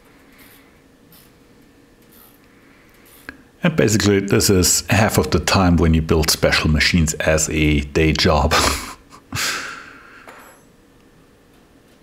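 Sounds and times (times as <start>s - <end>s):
man laughing through the nose: 8.5s - 9.9s.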